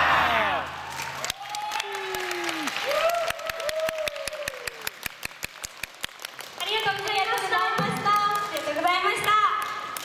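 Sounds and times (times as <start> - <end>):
audience clapping: 0.8 - 10.0.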